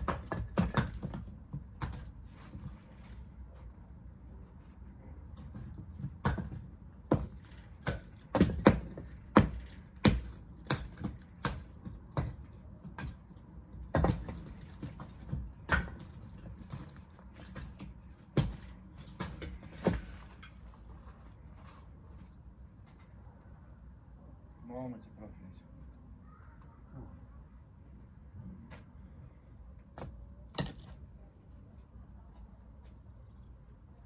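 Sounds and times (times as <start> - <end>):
bricks knocking and clattering: 0.0 - 3.0, 5.3 - 20.4.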